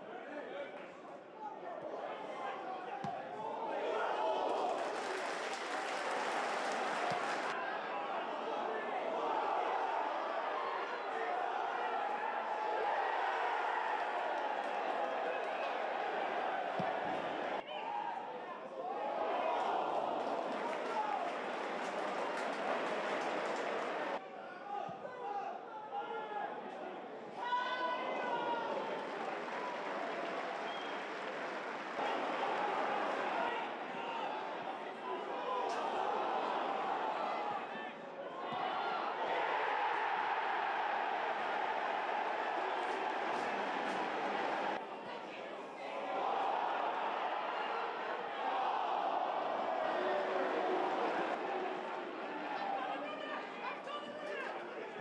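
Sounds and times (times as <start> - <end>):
stadium crowd shouting and chanting: 0.0 - 55.0.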